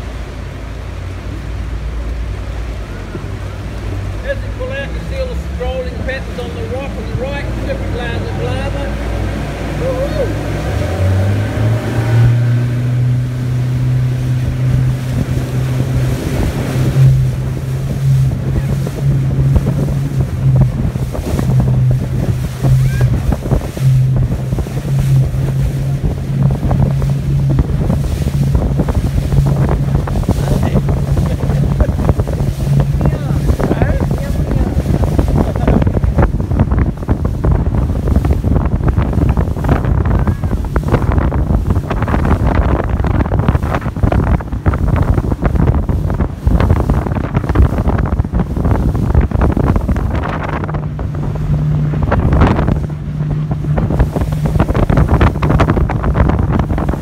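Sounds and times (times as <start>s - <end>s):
motorboat engine running: 0.0s - 57.0s
water splashing against hull: 0.0s - 57.0s
wind buffeting microphone: 0.0s - 57.0s.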